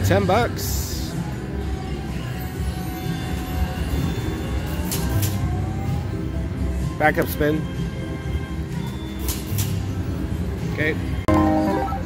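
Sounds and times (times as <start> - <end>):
rising tone: 11.3 - 12.0
slot machine win music: 11.3 - 12.0.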